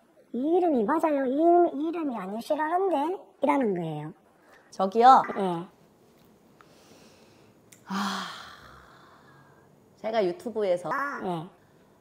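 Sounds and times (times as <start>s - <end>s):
person sighing: 7.8s - 9.3s.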